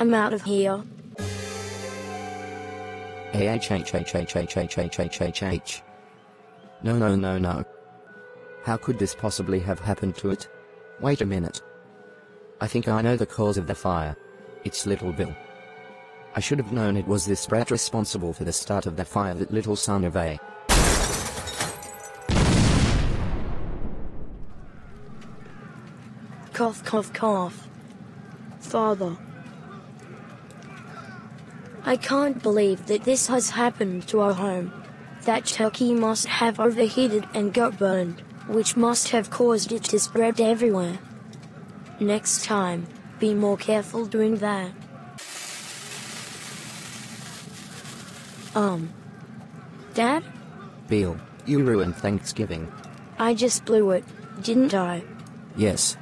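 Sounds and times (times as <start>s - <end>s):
steady rushing hiss: 45.2s - 48.6s.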